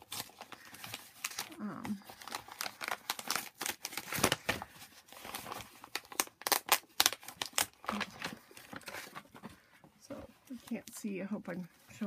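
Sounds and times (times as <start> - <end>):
paper wrapping crinkling: 0.0 - 12.0.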